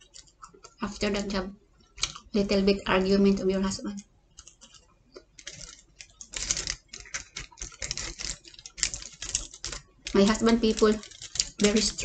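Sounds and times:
chewing crunchy pizza crust: 0:04.3 - 0:11.8.

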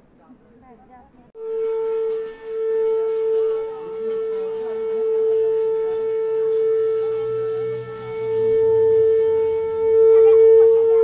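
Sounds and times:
conch shell blown: 0:01.4 - 0:11.0.

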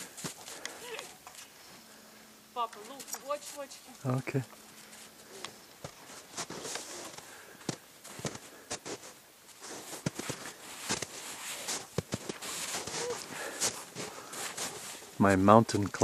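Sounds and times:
snow crunching: 0:00.0 - 0:16.0.

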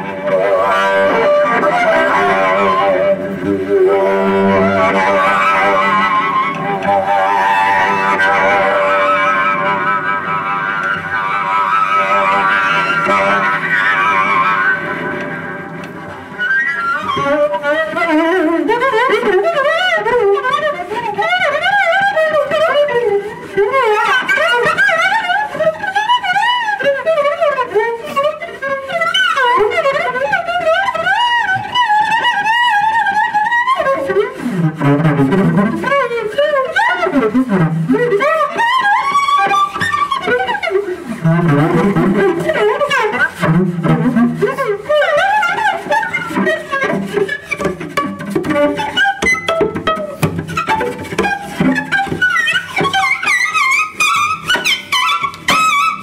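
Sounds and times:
bowed cello: 0:00.0 - 0:56.0.

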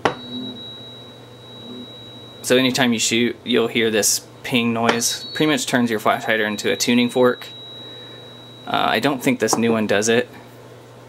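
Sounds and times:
high ringing ping: 0:00.0 - 0:04.1, 0:04.8 - 0:10.0.

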